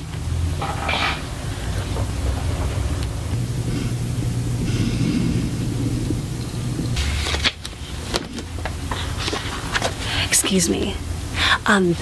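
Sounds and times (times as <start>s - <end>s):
low rumbling: 0.0s - 11.5s
low hum: 0.0s - 12.0s.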